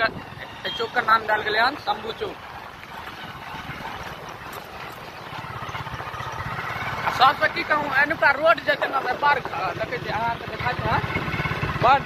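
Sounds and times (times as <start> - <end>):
motorcycle engine running: 0.0 - 12.0
road and wind noise: 0.0 - 12.0.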